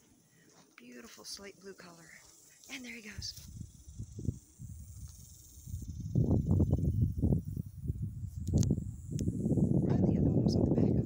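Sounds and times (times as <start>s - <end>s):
wind buffeting microphone: 3.1s - 11.0s.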